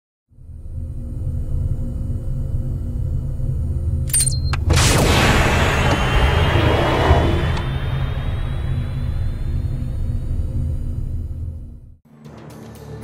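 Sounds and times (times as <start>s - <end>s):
deep low rumble: 0.4s - 4.1s, 4.7s - 12.0s
faint rising tone: 5.2s - 12.0s.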